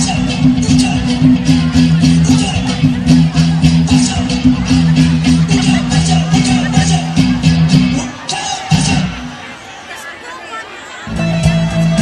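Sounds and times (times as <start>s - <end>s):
festival crowd voices: 0.0s - 12.0s.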